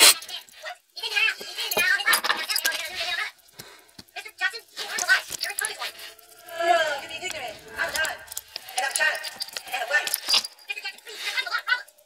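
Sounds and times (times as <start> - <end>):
plastic rustling: 1.2 - 12.0
background voice: 4.5 - 12.0
metal tools clinking: 7.2 - 11.1.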